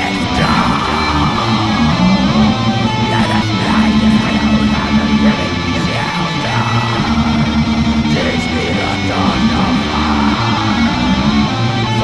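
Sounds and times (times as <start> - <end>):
black metal electric guitars: 0.0 - 12.0
low bass notes: 0.0 - 12.0.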